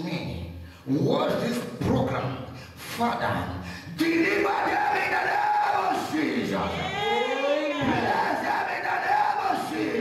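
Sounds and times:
man praying into a microphone: 0:00.0 - 0:06.8
voices praying aloud: 0:04.0 - 0:10.0.

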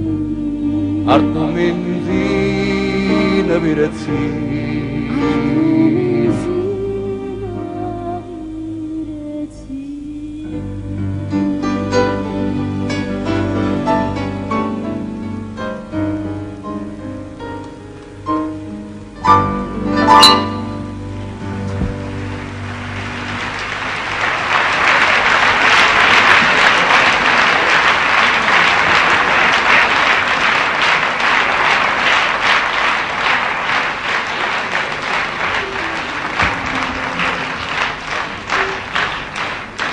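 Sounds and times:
audience applauding: 0:21.6 - 0:39.9.

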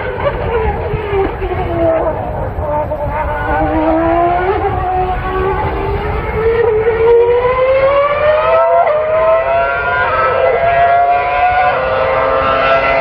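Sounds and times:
racing car engine accelerating: 0:00.0 - 0:13.0.

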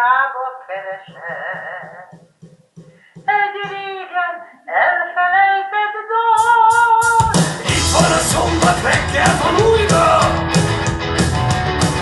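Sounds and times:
rock band playing: 0:07.2 - 0:12.0.

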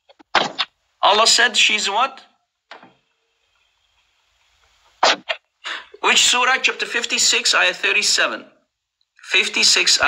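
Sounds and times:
person's breathy bursts: 0:05.7 - 0:06.0.

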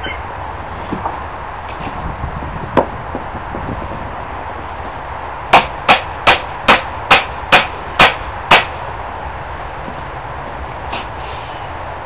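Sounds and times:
hammer blows: 0:05.5 - 0:08.8.

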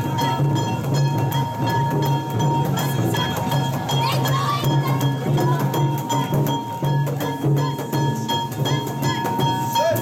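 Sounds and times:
clanging metal beaten: 0:00.0 - 0:10.0
drum beating: 0:00.0 - 0:10.0.

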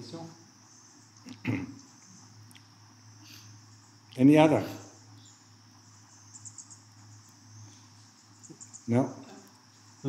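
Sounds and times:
insects chirring: 0:00.0 - 0:10.0
quick insect chirps: 0:00.0 - 0:10.0.

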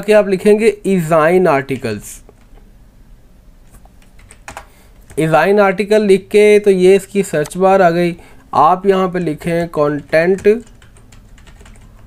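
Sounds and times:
keyboard keystrokes: 0:04.0 - 0:05.2, 0:10.0 - 0:12.0.

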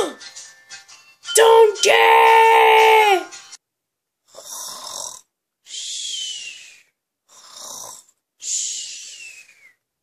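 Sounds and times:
person imitating snoring: 0:04.3 - 0:05.3, 0:07.3 - 0:08.1.

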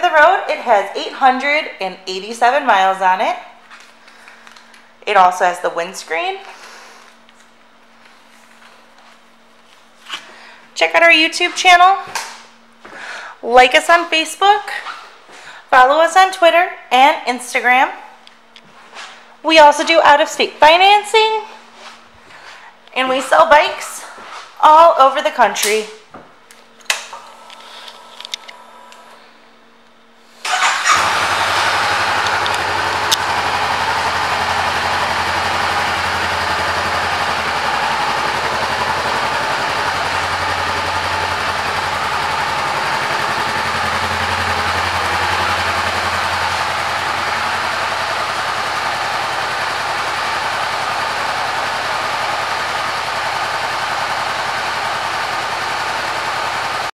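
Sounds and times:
motorcycle engine starting and idling: 0:30.4 - 0:56.9.

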